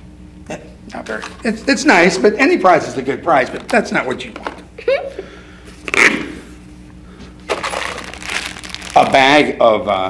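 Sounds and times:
plastic candy bag crinkling: 7.5 - 9.4.

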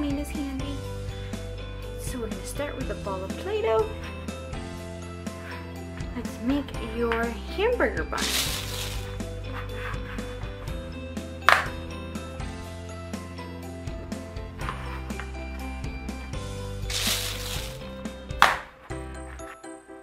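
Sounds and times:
soft background music: 0.0 - 20.0
handling rustle: 8.2 - 9.2, 16.9 - 17.9.

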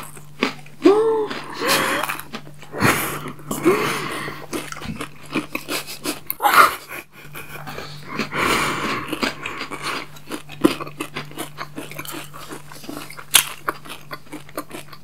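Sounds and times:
breathy sounds: 0.8 - 10.1
wet chewing clicks and smacks: 4.5 - 6.4, 8.1 - 15.0.

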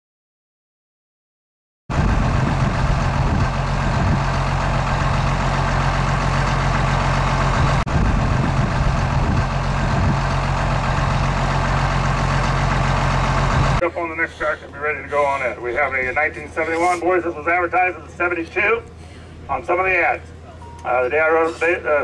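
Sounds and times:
engine idling: 1.9 - 22.0.

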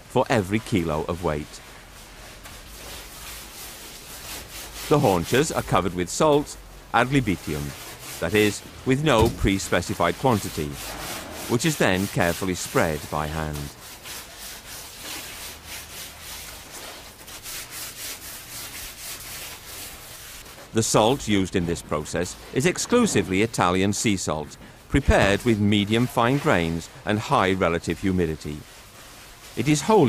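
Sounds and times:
salt scraping over meat: 7.0 - 24.2.

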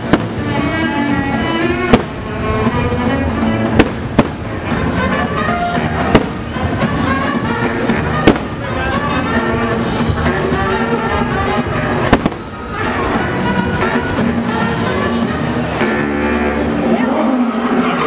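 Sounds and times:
fireworks bangs: 0.0 - 16.0
music soundtrack: 0.0 - 18.0.

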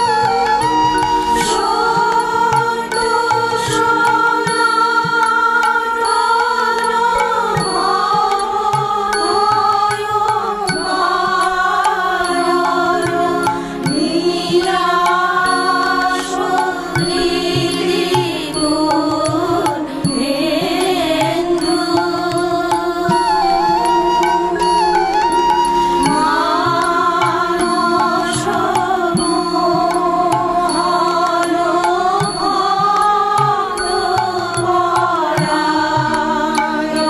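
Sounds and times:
instrumental accompaniment with beat: 0.0 - 37.0
person singing a hymn: 0.0 - 37.0.

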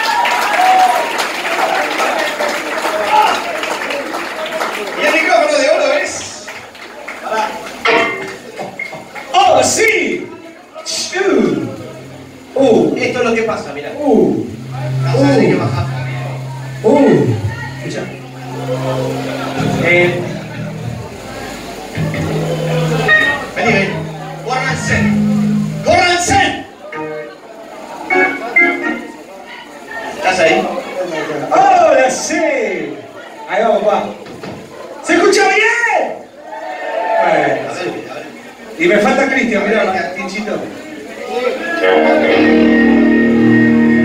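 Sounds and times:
loud falling shout: 0.0 - 3.9
people talking and calling out: 3.0 - 38.8, 40.7 - 44.0.

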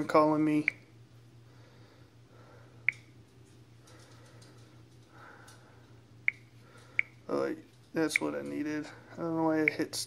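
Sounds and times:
faint low hum: 0.0 - 10.0
finger snap: 2.9 - 3.1, 6.3 - 7.2.

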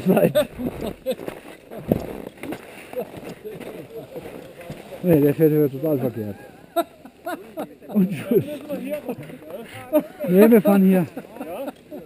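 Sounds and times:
people talking indistinctly: 2.8 - 12.0.

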